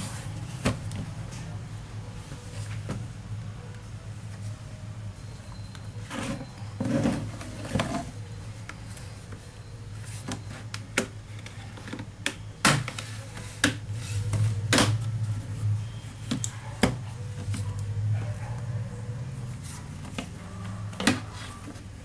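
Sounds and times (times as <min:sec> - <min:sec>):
steady low hum: 0:00.0 - 0:22.0
plastic case scraping: 0:06.0 - 0:08.2.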